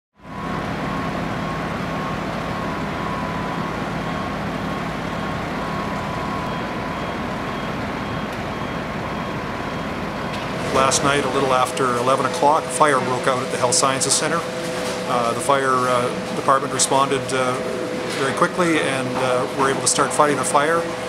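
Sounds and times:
fire truck engines droning: 0.2 - 21.0
high whine: 0.2 - 21.0.

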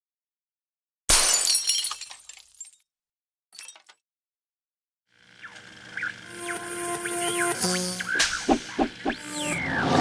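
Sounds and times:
glass shattering: 1.1 - 2.8, 3.6 - 4.0.

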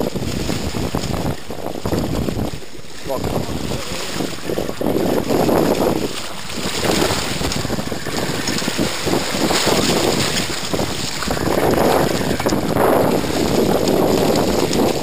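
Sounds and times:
water splashing and churning: 0.0 - 15.0
wind on microphone: 0.0 - 15.0.

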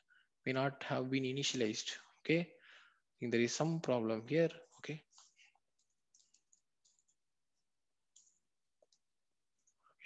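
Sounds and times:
soft keyboard keystrokes: 5.8 - 7.2.

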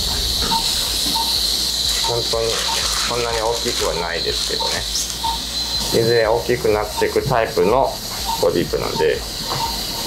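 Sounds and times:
low hum: 0.0 - 3.1
steady hiss: 0.0 - 10.0.

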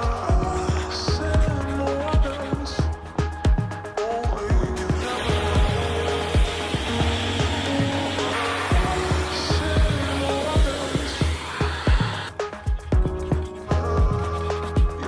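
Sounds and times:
background music with beat: 0.0 - 15.0
pressure washer spraying water: 4.8 - 15.0.

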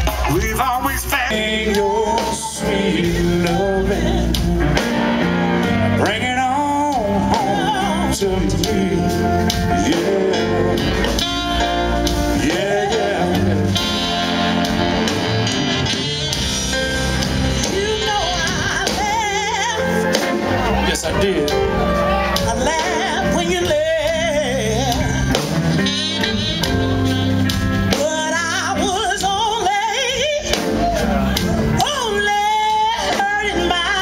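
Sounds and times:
blues band playing: 0.0 - 34.0
electric guitar: 1.2 - 34.0.

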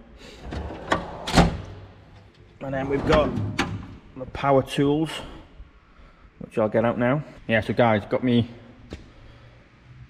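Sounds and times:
drawer banging closed: 0.4 - 1.8, 2.8 - 4.0
metal drawer sliding shut: 0.4 - 1.9, 2.7 - 4.0.

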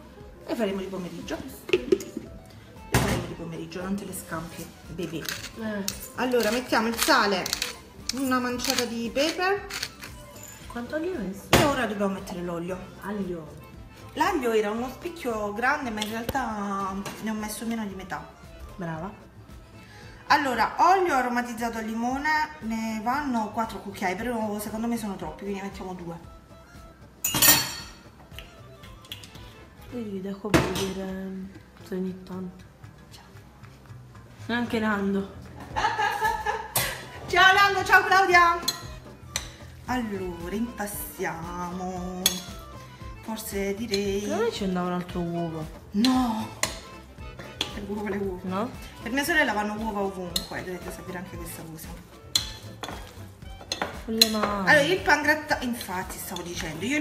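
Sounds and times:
faint background music: 0.0 - 57.0
metal clinking against glass: 10.2 - 10.8, 27.2 - 28.0
fork stirring wet mixture: 46.0 - 47.9, 51.9 - 54.5.

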